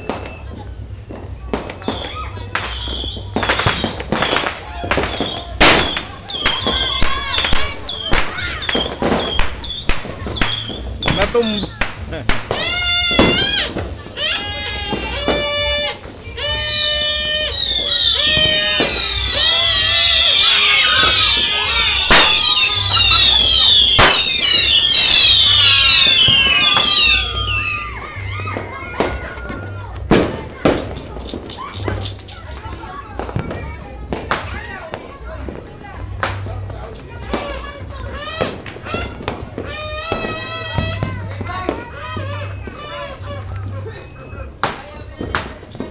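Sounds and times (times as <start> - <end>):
whistling fireworks screeching: 0.0 - 35.6, 36.7 - 45.9
sharp firework bangs: 1.2 - 32.1
high-pitched gliding whistles: 15.2 - 29.0.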